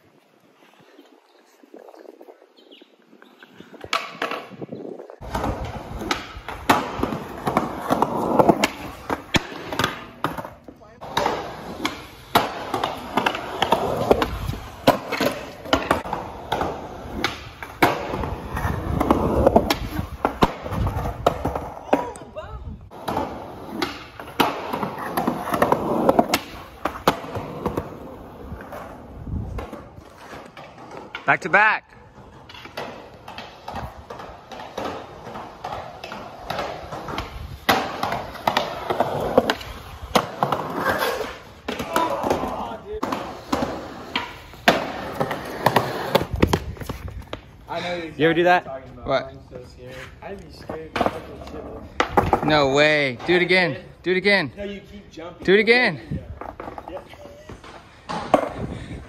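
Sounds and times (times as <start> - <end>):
skateboard wheels rolling on concrete: 0.0 - 59.0
skateboard clacks: 5.2 - 22.3, 22.9 - 28.8, 32.2 - 47.9, 50.4 - 53.6, 56.3 - 59.0.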